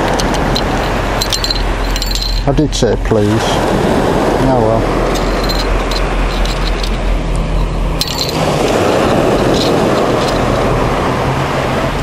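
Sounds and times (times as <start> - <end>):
faint steady hum: 0.0 - 12.0
surf: 0.0 - 12.0
wind on microphone: 3.1 - 12.0.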